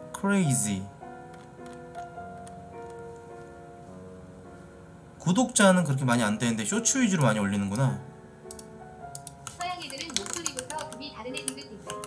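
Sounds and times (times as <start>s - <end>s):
soft background music: 0.0s - 12.0s
computer keyboard typing: 1.3s - 3.0s, 8.5s - 12.0s.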